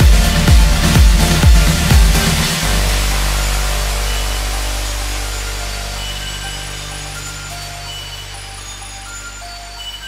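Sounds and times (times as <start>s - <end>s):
low bass chord: 0.0s - 10.0s
short high synth notes: 0.0s - 10.0s
white noise wash: 0.0s - 10.0s.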